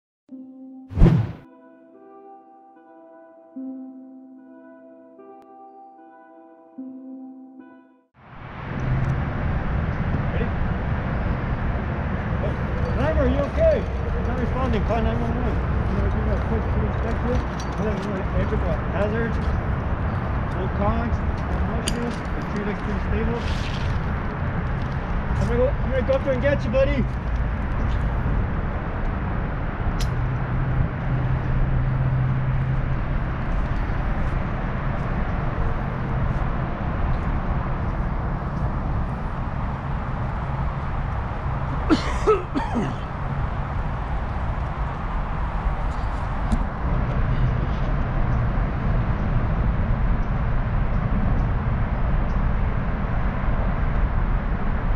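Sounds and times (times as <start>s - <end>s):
outdoor rumble and hiss: 8.2s - 54.9s
sharp click: 30.0s - 30.2s.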